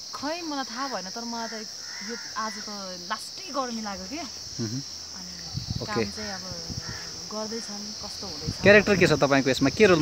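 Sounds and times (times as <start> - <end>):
insects droning: 0.0 - 10.0
woman talking: 0.1 - 4.4, 5.1 - 8.9.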